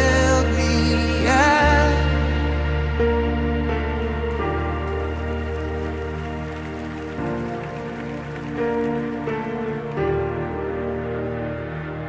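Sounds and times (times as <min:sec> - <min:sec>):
instrumental gospel music: 0:00.0 - 0:12.0.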